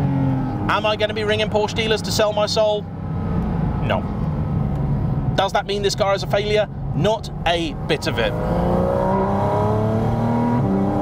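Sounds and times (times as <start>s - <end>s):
car engine droning: 0.0s - 11.0s
road noise: 0.0s - 11.0s.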